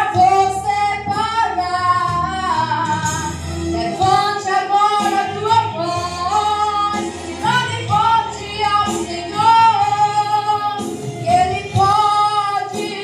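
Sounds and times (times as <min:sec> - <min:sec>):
woman singing gospel song: 0:00.0 - 0:13.0.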